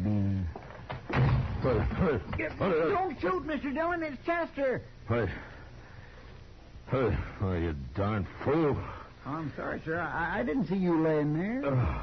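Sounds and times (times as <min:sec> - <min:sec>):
door slamming shut: 0:01.0 - 0:02.5.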